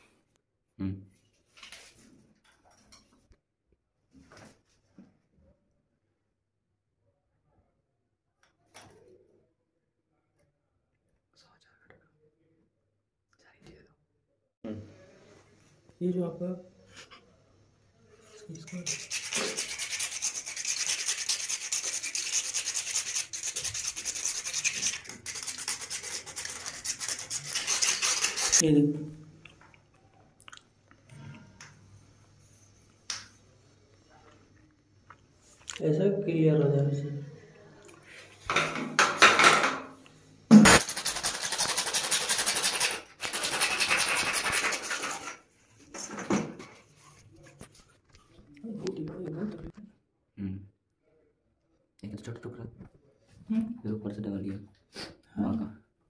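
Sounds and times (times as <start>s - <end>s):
file rasping plastic pipe: 18.6s - 28.6s, 40.7s - 45.4s.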